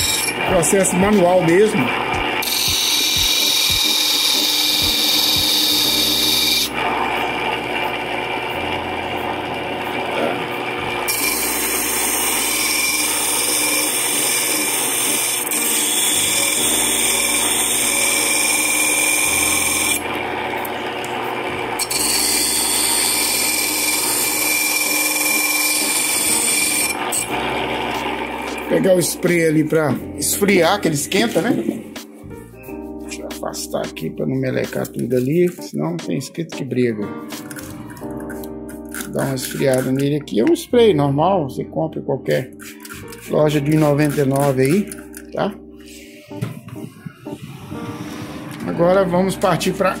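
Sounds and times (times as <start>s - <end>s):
motor hum: 0.0s - 30.0s
metal grinding on grinding wheel: 0.0s - 31.9s, 37.4s - 40.5s, 42.5s - 45.2s.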